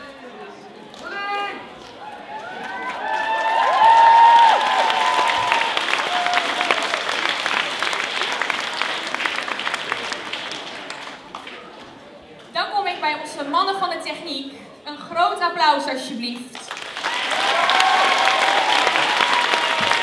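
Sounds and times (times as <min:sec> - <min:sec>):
voices cheering: 0:01.1 - 0:07.3, 0:17.0 - 0:20.0
audience applauding: 0:02.0 - 0:11.7, 0:16.6 - 0:20.0.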